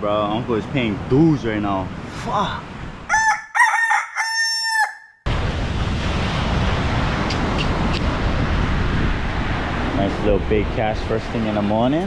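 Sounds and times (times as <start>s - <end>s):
rooster crowing: 3.1s - 5.2s.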